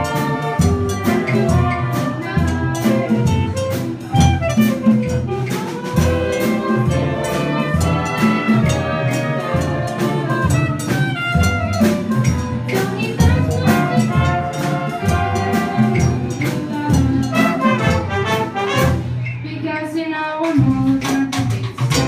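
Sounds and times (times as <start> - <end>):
steady drum beat: 0.0 - 19.2, 20.5 - 22.0
brass section playing jazz: 0.0 - 19.4.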